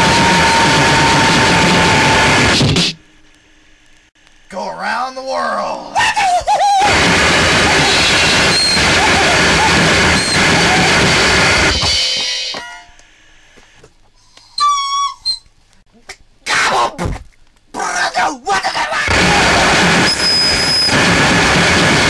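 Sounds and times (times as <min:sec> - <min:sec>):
high whistling squeal: 0:00.0 - 0:02.5, 0:07.7 - 0:13.0, 0:19.5 - 0:21.1
loud noise blasts: 0:00.0 - 0:03.1, 0:06.8 - 0:12.2, 0:19.1 - 0:22.0
distorted noise wall: 0:00.0 - 0:14.2, 0:15.4 - 0:22.0.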